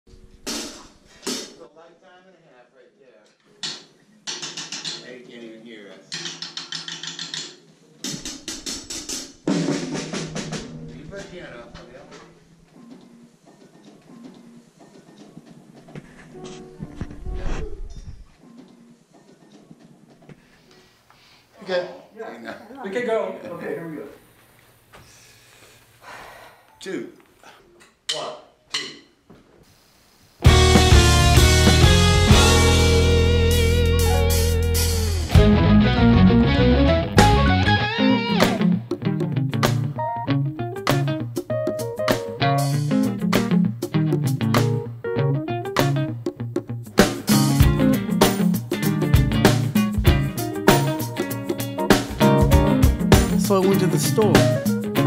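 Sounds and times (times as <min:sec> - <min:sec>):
person counting in: 0:53.3 - 0:55.0.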